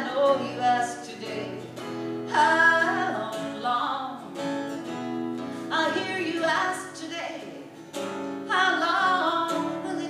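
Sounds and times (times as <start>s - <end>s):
woman singing: 0.0s - 4.6s, 5.6s - 7.8s, 8.4s - 10.0s
strummed acoustic guitar: 0.0s - 10.0s.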